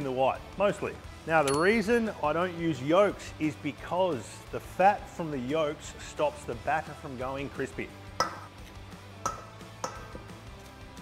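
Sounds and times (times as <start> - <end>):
soft background music: 0.0 - 11.0
eggs knocked on metal bowl: 8.2 - 8.5, 9.2 - 10.2.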